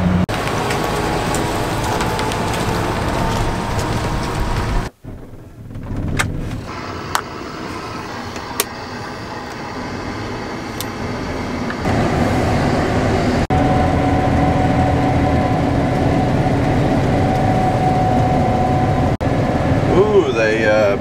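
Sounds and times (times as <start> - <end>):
combine harvester drone: 0.0 - 4.9, 5.6 - 21.0
steady machine whine: 6.6 - 21.0.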